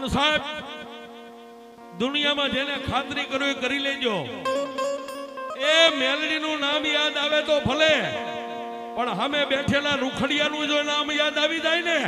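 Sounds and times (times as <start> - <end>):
harmonium drone: 0.0 - 11.9
plucked strings: 1.8 - 10.7
man singing: 5.6 - 8.4.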